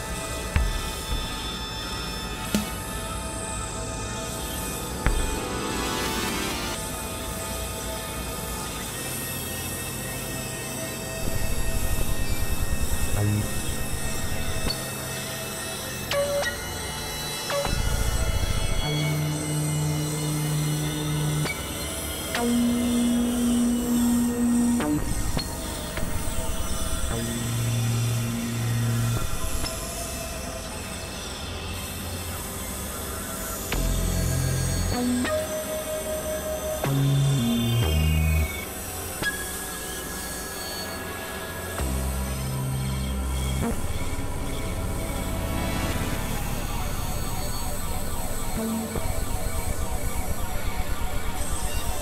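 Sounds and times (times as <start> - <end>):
layered synthesizer drone: 0.0 - 52.0.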